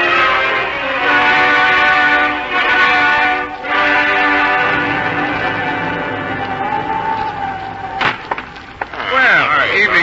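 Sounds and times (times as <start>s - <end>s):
orchestral brass chords: 0.0s - 7.9s.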